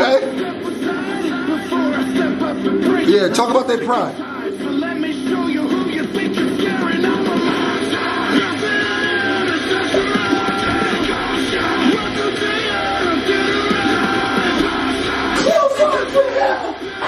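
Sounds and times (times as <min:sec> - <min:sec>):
man rapping over loud music: 0:00.0 - 0:17.0.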